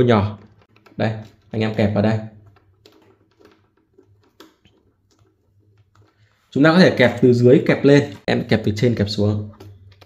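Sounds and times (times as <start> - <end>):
metal connectors clicking onto posts: 0.0 - 6.3.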